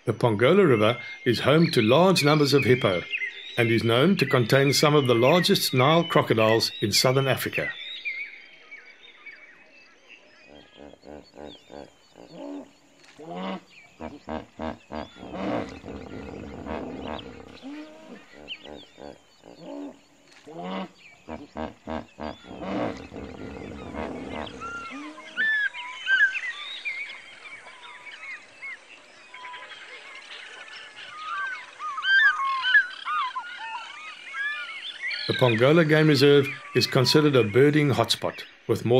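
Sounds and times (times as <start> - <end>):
birds chirping: 0.0 - 38.9
hippos honking grunts: 10.5 - 25.5.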